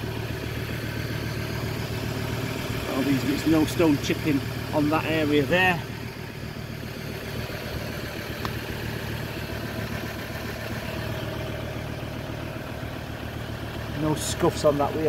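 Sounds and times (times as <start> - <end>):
diesel engine idling: 0.0 - 15.0.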